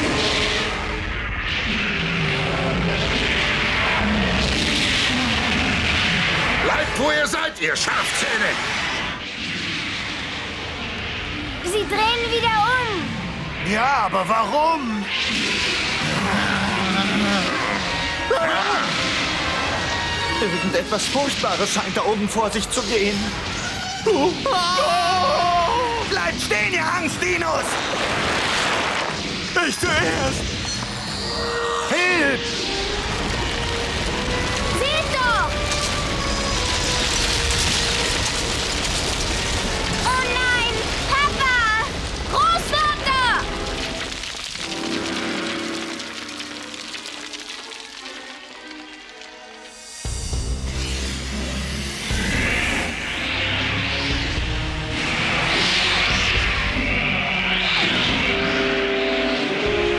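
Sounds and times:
tense orchestral music: 28.4 - 59.9
rumble of falling rock: 32.9 - 50.5
loud steady rushing noise: 50.1 - 59.9.

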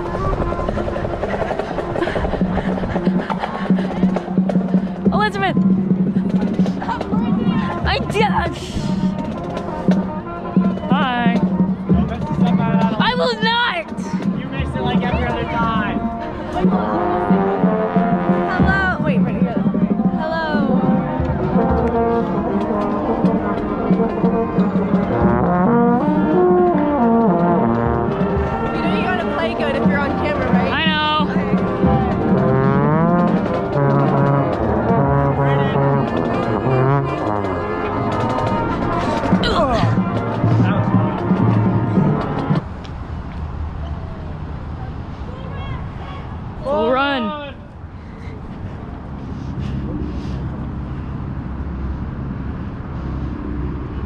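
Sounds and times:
marching band brass playing: 0.0 - 42.8
trombone playing close: 15.4 - 19.0, 20.9 - 42.6.

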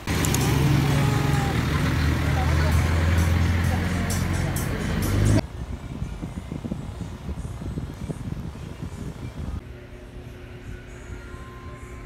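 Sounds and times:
low vehicle rumble: 0.0 - 12.0
indistinct voices: 0.2 - 5.4.

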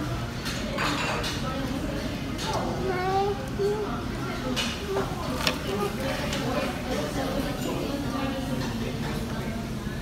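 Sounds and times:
indistinct background talk: 0.0 - 10.0.

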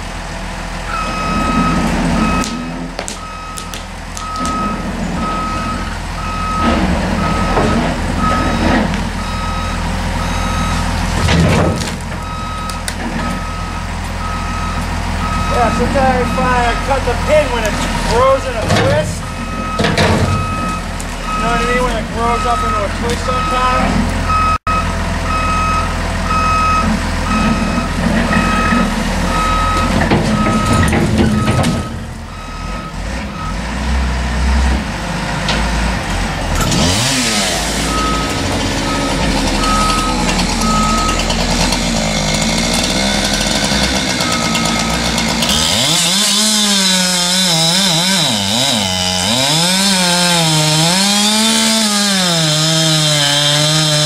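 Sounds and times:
diesel engine running: 0.0 - 54.0
reversing beeper: 0.9 - 11.3, 12.2 - 33.8, 37.8 - 45.9
chainsaw cutting wood: 36.5 - 54.0.

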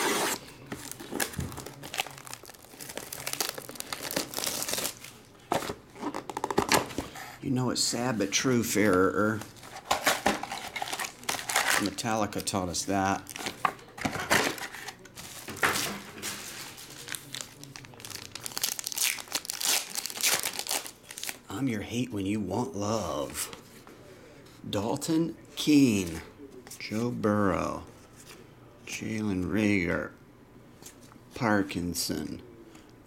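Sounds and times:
plastic shrink wrap crinkling: 0.7 - 5.4, 9.4 - 12.6, 14.5 - 21.4.

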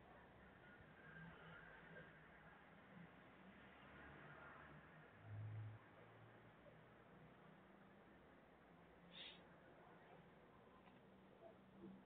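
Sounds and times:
short soft hiss: 9.1 - 9.4.

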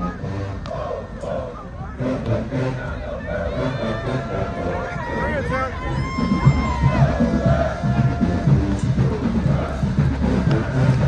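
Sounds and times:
crowd talking and calling out: 0.0 - 11.0
steady low rumble: 0.0 - 11.0.

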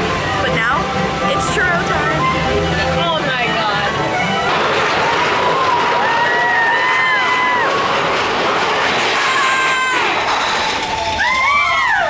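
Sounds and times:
people screaming and whooping: 4.7 - 12.0.

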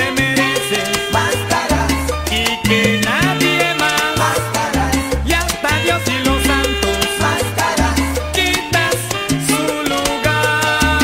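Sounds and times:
salsa music: 0.0 - 11.0.

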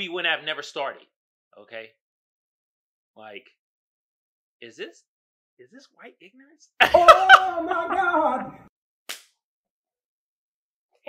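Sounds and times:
person laughing: 6.8 - 8.5
hands clapping: 9.1 - 9.3.

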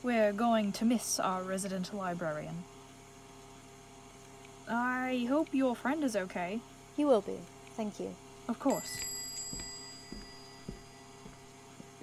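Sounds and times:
steady low hum: 0.0 - 12.0
small bell ringing: 8.6 - 11.5.

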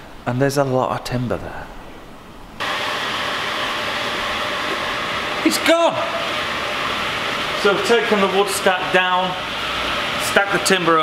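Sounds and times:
steady rushing fan noise: 2.5 - 11.0.

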